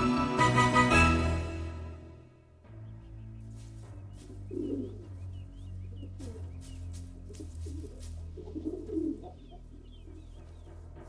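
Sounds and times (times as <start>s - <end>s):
soft background music: 0.0s - 11.0s
high bird chirps: 2.7s - 10.7s
bird cooing: 4.2s - 10.4s.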